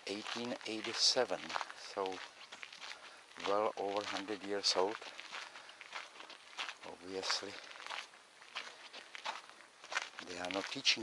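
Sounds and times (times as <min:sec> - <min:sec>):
footsteps crunching on gravel: 0:00.0 - 0:11.0.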